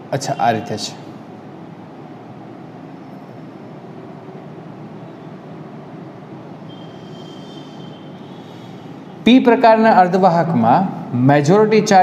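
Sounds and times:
fan-like room noise: 0:00.0 - 0:12.0
marker squeaking on whiteboard: 0:06.7 - 0:09.2.

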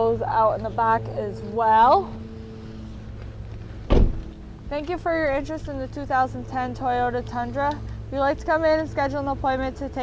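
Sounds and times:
low background hum: 0:00.0 - 0:10.0
short sharp thump: 0:03.9 - 0:04.3.

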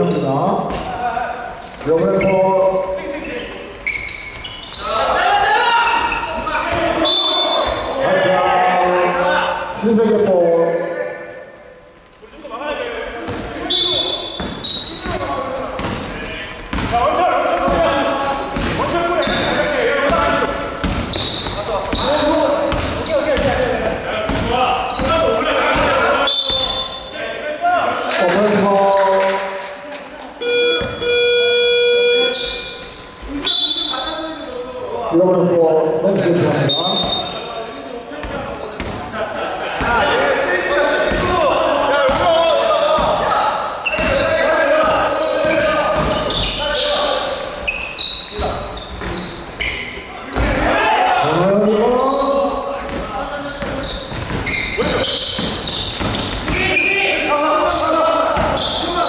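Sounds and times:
players shouting: 0:04.8 - 0:09.7, 0:50.2 - 0:52.3
electronic buzzer: 0:30.4 - 0:32.8.

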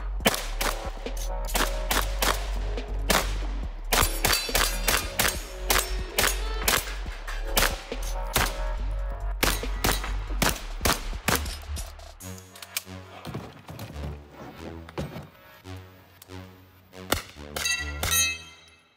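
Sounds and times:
background music: 0:00.0 - 0:18.9.

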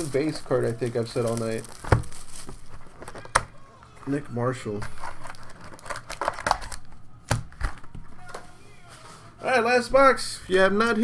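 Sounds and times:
foil card packs rustling: 0:00.0 - 0:09.4.

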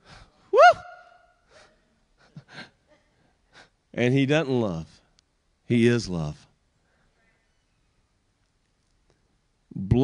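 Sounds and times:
man exclaiming into a microphone: 0:00.6 - 0:01.0.

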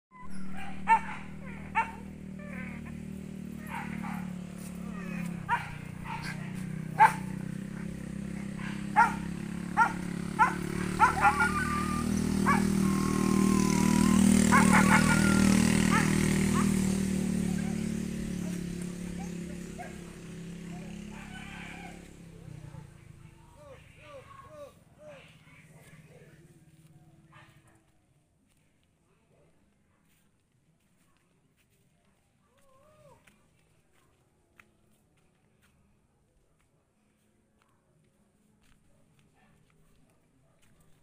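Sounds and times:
dog barking: 0:00.3 - 0:13.4, 0:14.1 - 0:20.1, 0:20.8 - 0:22.0, 0:27.3 - 0:27.9.

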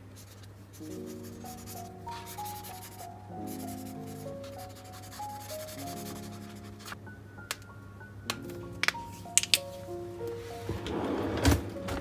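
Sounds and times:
marker pen rubbing on paper: 0:00.2 - 0:07.0
soft instrumental music: 0:00.2 - 0:12.0.

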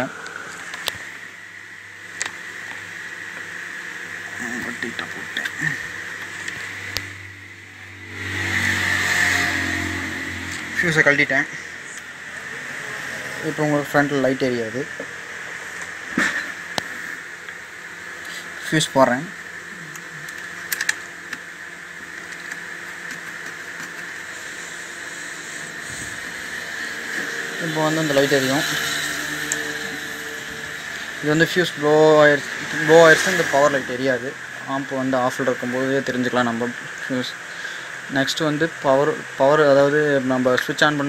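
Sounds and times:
amplifier electrical hum: 0:00.0 - 0:41.0
steady background hiss: 0:00.0 - 0:41.0.

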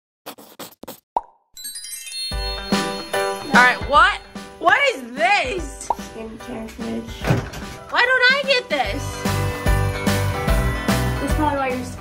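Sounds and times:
chiming music sting: 0:01.6 - 0:04.5.

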